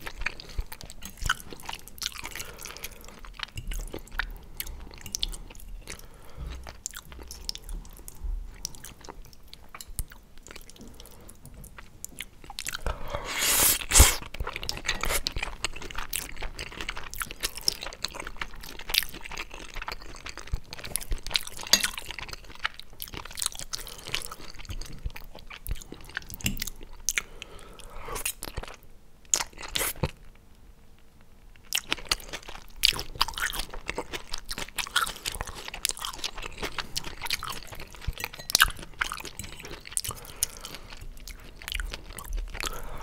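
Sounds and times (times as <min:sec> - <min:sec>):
chewing with wet mouth clicks: 0:00.0 - 0:06.0, 0:06.6 - 0:12.9, 0:14.2 - 0:27.3, 0:31.6 - 0:43.0.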